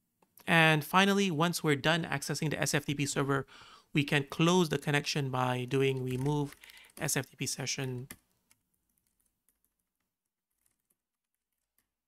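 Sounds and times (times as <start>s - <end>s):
faint keyboard typing: 5.7s - 12.0s.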